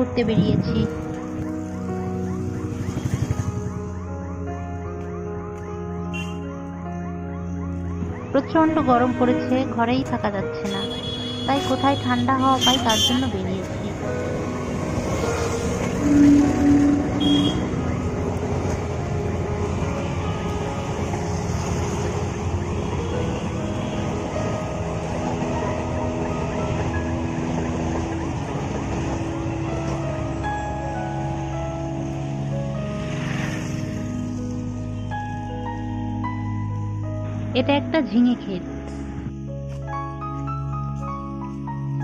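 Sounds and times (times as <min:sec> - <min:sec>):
background music: 0:00.0 - 0:42.0
passenger train rumbling past: 0:08.7 - 0:35.4.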